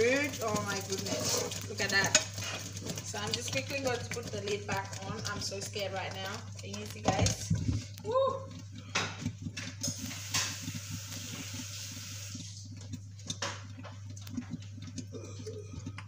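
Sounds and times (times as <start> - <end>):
sauce boiling and spitting in pan: 0.0 - 16.0.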